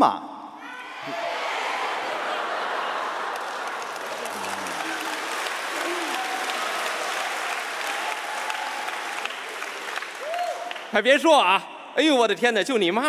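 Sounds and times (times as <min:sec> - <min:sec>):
audience applauding: 0:01.1 - 0:11.0
voices through clapping: 0:02.5 - 0:11.0
man speaking: 0:11.0 - 0:13.0.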